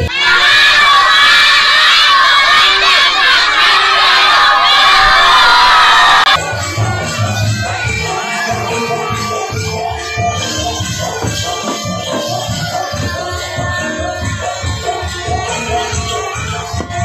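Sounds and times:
children shouting and cheering: 0.0s - 17.0s
band music with drum beat: 6.3s - 17.0s.

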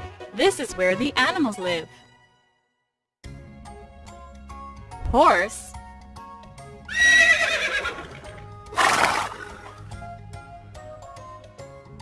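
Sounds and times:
horse whinnying: 6.9s - 9.8s.

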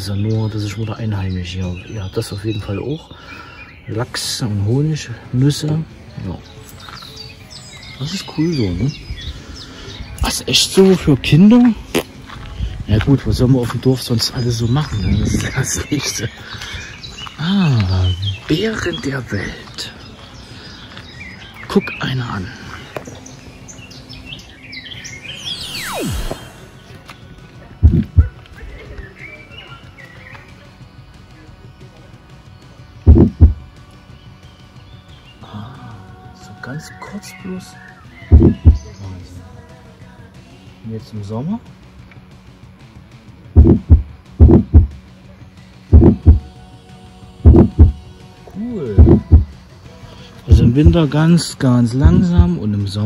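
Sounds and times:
small birds chirping: 0.0s - 42.8s, 43.5s - 53.0s
descending whistling swoosh: 25.3s - 27.0s
deep thuds: 27.8s - 28.3s, 33.1s - 33.6s, 38.3s - 38.8s, 43.6s - 45.0s, 45.9s - 46.4s, 47.4s - 48.0s, 49.0s - 49.5s, 50.5s - 51.0s
deep heartbeat thumps: 27.8s - 28.4s, 33.1s - 33.6s, 38.3s - 38.9s, 43.6s - 45.0s, 45.9s - 46.5s, 47.4s - 48.0s, 49.0s - 49.6s, 50.5s - 51.0s, 52.0s - 52.5s.

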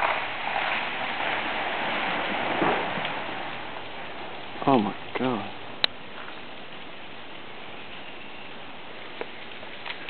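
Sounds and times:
crackling hiss of ice in branches: 0.0s - 10.0s.

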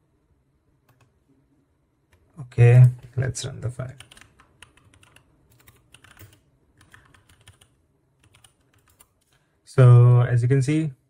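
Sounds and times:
faint keyboard typing clicks: 0.8s - 1.1s, 3.9s - 9.5s.

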